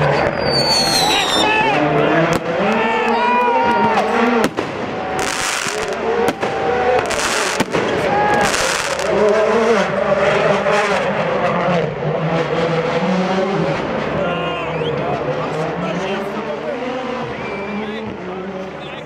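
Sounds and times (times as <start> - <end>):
crowd shouting: 0.0 - 10.8, 14.0 - 19.0
firecrackers banging and crackling: 0.0 - 14.2
rally car engine revving: 0.0 - 19.0.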